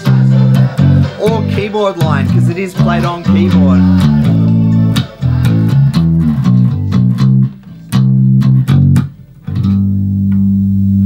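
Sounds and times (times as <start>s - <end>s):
electric bass guitar riff: 0.0s - 11.0s.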